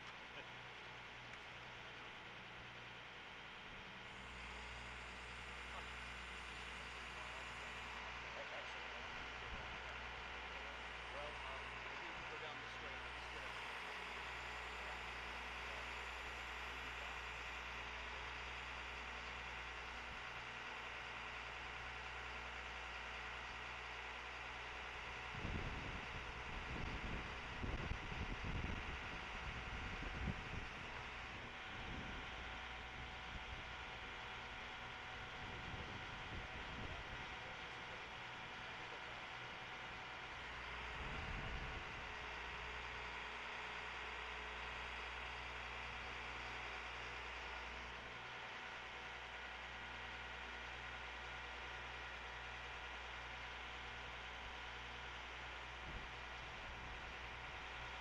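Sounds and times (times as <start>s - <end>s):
low buffeting rumbles: 0.0s - 17.1s, 25.3s - 46.1s
truck engine idling: 0.0s - 58.0s.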